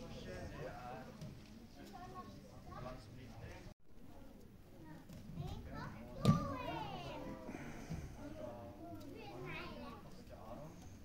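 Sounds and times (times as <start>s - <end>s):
children's voices: 4.0s - 10.6s.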